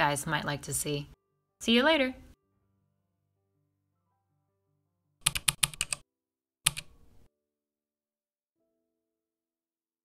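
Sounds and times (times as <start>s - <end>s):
mechanical keyboard clicks: 5.2s - 6.0s, 6.7s - 6.9s.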